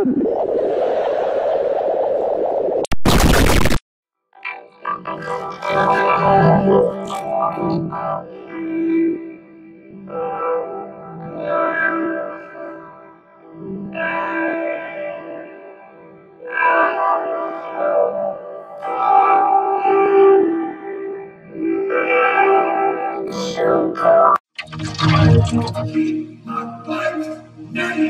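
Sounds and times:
distorted pitch-shifted voice: 2.9s - 3.8s, 4.4s - 8.3s, 23.1s - 26.2s.

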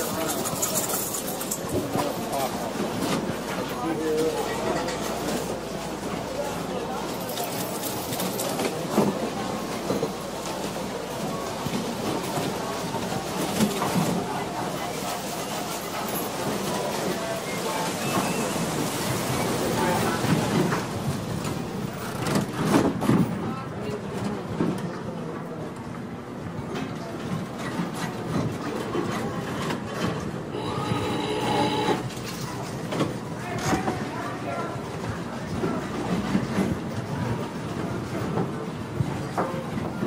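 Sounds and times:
crowd talking: 0.0s - 40.0s
slot machine clatter: 30.6s - 32.2s.

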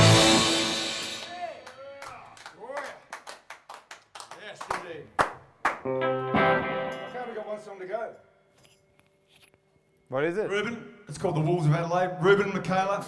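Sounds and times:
people clapping: 1.0s - 6.0s
electric guitar chord: 5.9s - 7.2s.

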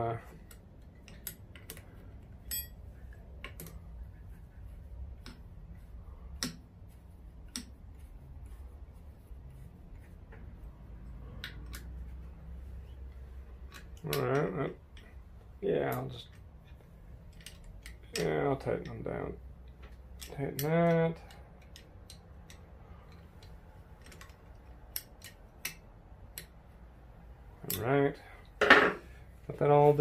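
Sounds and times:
low steady hum: 0.0s - 30.0s.

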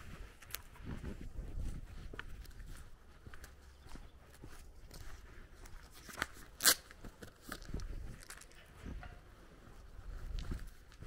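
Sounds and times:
footsteps on gravel: 0.0s - 11.0s.

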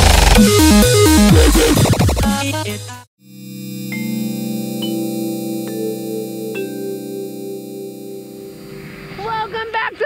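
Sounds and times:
keyboard background music: 0.0s - 9.8s.

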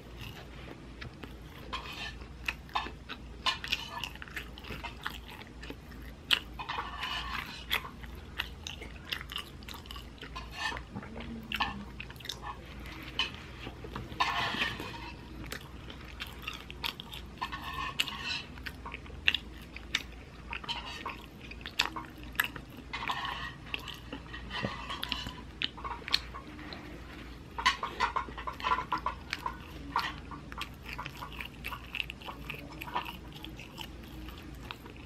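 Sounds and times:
person chewing hamburger: 0.0s - 35.0s.

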